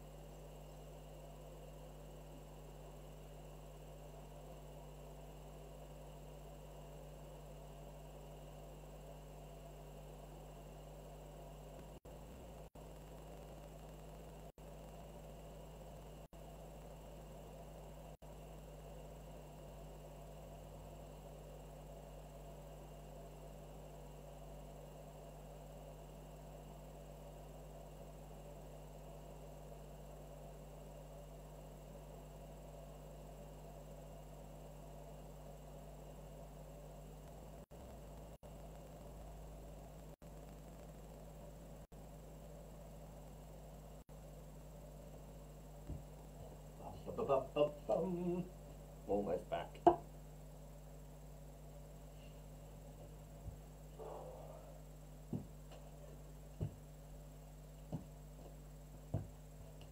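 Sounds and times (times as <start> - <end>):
faint electrical hum and hiss: 0.0 - 59.9.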